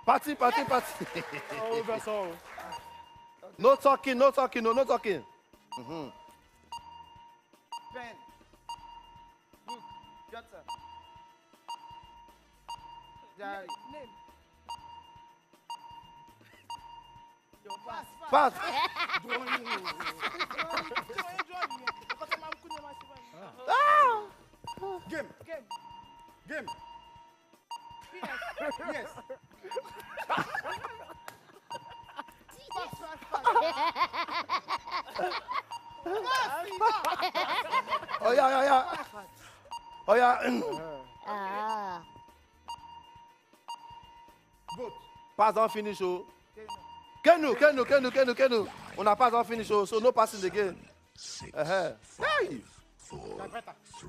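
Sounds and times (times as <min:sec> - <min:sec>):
timer ticks: 0:00.0 - 0:51.8, 0:53.1 - 0:54.0
short electronic beeps: 0:02.7 - 0:18.6, 0:20.5 - 0:37.0, 0:37.7 - 0:47.8, 0:53.1 - 0:54.0
person shouting: 0:23.7 - 0:24.3.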